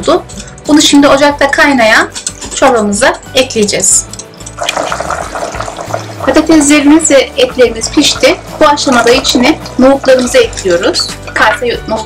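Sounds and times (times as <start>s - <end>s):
water bubbling at a rolling boil: 4.6s - 10.5s.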